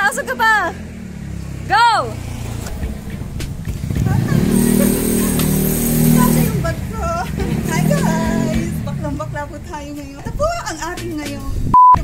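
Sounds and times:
vehicle engine running: 0:00.0 - 0:11.7.

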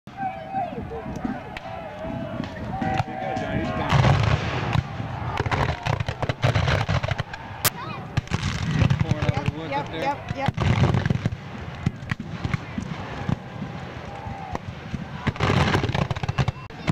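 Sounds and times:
heavy gunfire booms: 0:02.4 - 0:16.9.

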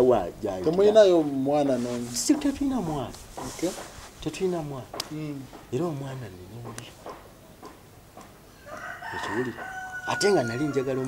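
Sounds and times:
rooster crowing: 0:08.5 - 0:11.0.

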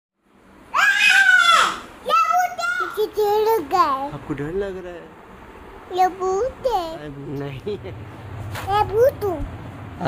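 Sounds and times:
child calling and crying: 0:00.7 - 0:04.1, 0:05.9 - 0:07.0, 0:08.6 - 0:09.5.

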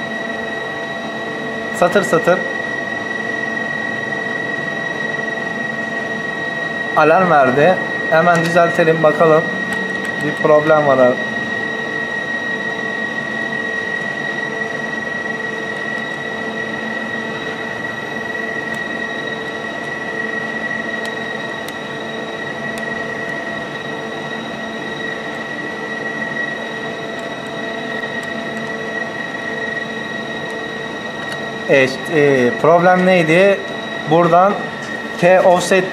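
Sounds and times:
machine hum with high whine: 0:00.0 - 0:35.9.

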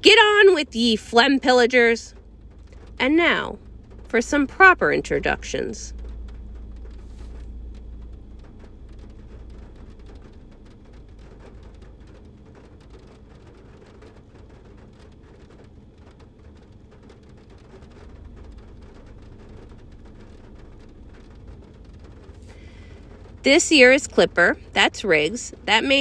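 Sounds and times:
light crackling: 0:00.0 - 0:26.0.

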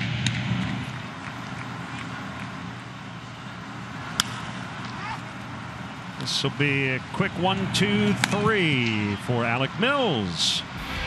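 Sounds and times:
ballpark background noise: 0:00.0 - 0:10.8
bat cracking on ball: 0:04.1 - 0:05.0.

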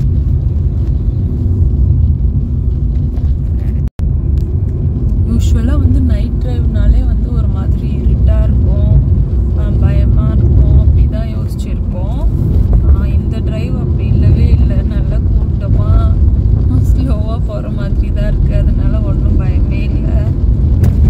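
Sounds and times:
car engine and road noise: 0:00.0 - 0:21.0.

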